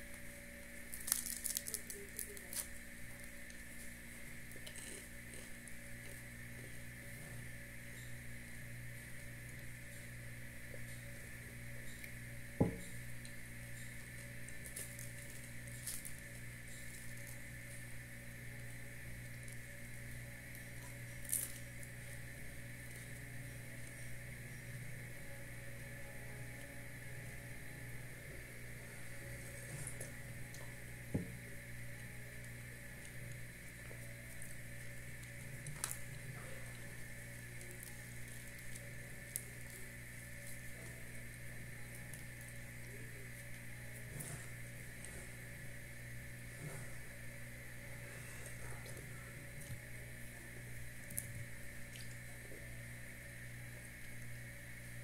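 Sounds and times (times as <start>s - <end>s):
high steady whine: 0.0s - 55.0s
steady low hum: 0.0s - 55.0s
person chewing bread: 0.1s - 7.0s.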